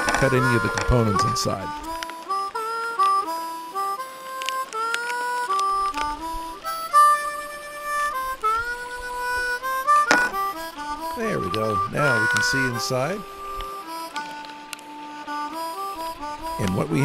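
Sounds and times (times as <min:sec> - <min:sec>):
harmonica melody: 0:00.0 - 0:17.0.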